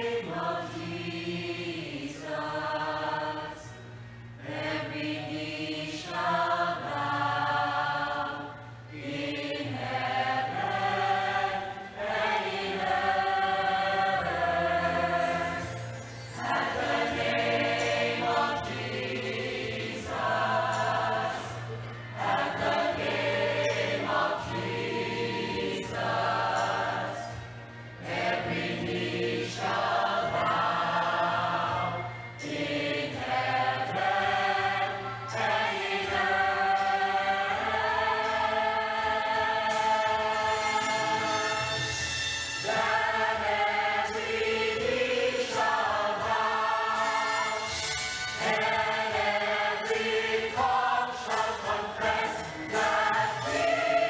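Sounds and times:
choir singing a hymn: 0.0 - 42.0, 42.6 - 54.0.

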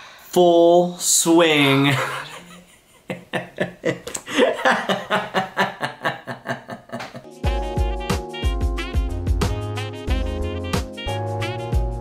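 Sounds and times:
man laughing hard: 1.9 - 7.3.

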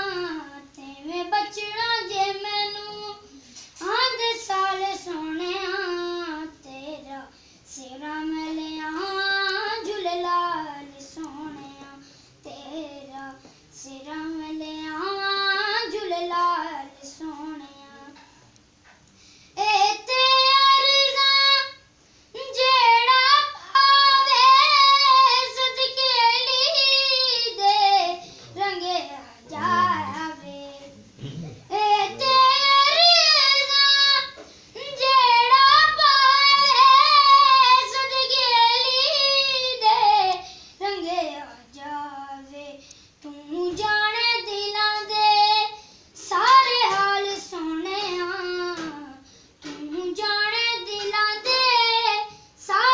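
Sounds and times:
boy singing solo: 22.4 - 52.9.

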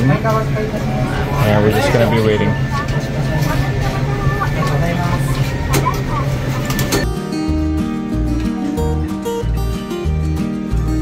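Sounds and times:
indistinct voices: 0.0 - 9.7
background music with bass line: 7.0 - 11.0.

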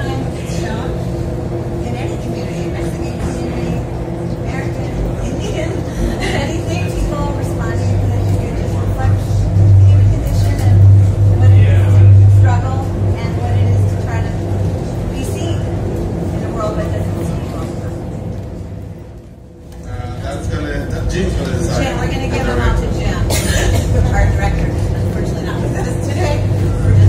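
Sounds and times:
muffled speech at a microphone: 0.0 - 19.0, 19.7 - 27.0
crowd noise: 0.0 - 27.0
steady low hum: 0.0 - 27.0.

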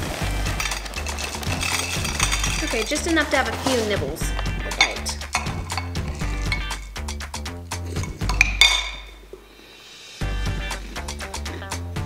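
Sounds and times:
spoon clinking ceramic bowl: 0.6 - 3.1, 4.3 - 7.0, 7.8 - 9.2
background music with bass and beat: 3.6 - 9.2, 10.2 - 12.0.

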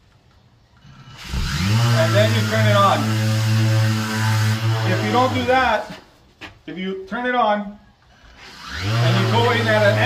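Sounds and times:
electric drywall sander humming: 1.1 - 5.8, 8.4 - 10.0.

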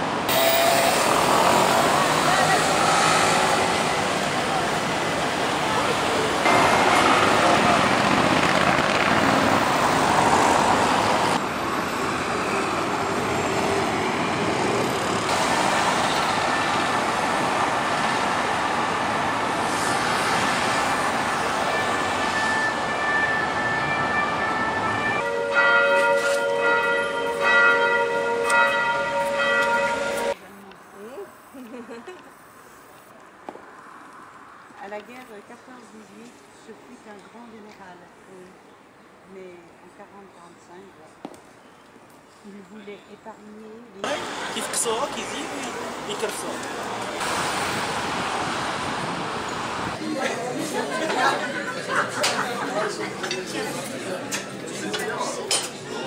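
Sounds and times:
cars passing: 0.0 - 40.1, 44.0 - 56.0
road traffic: 0.0 - 56.0
bells ringing: 24.2 - 30.4
crowd chatter: 50.0 - 56.0.

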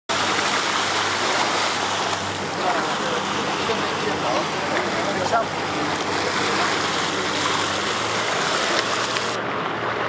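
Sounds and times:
water splashing beside a boat: 0.1 - 9.4
boat engine hum: 0.1 - 10.0.

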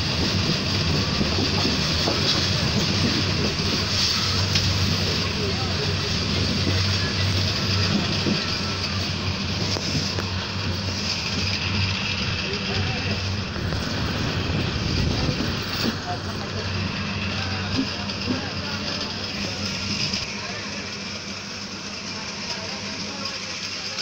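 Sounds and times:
moving passenger train: 0.0 - 24.0.

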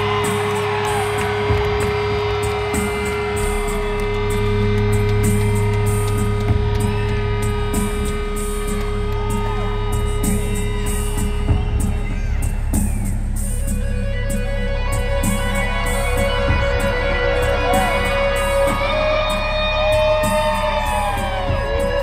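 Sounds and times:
rock band playing: 0.0 - 11.8.

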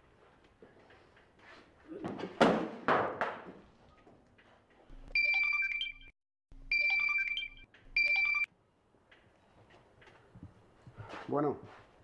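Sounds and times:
phone ringtone melody: 5.2 - 6.1, 6.7 - 8.5.

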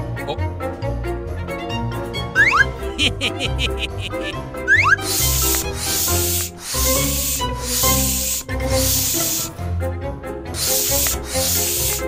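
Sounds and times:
background music: 0.0 - 12.0
air pump hiss: 4.0 - 9.6, 10.5 - 12.0.

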